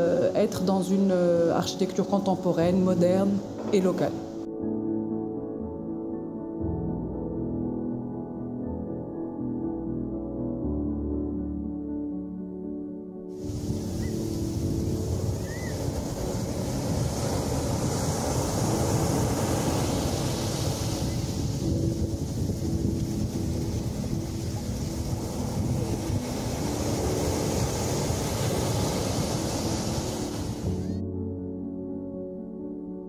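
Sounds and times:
waves washing onto a beach: 13.4s - 30.9s
wind buffeting the microphone: 13.4s - 30.9s.

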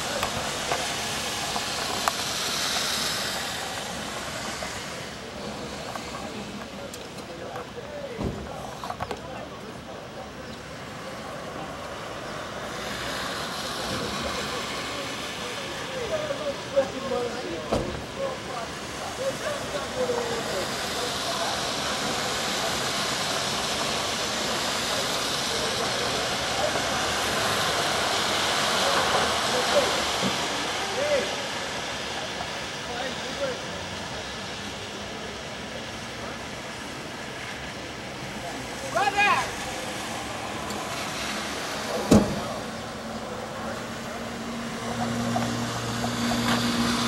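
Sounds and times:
street traffic noise: 0.0s - 47.0s
distant men arguing: 37.8s - 46.5s.

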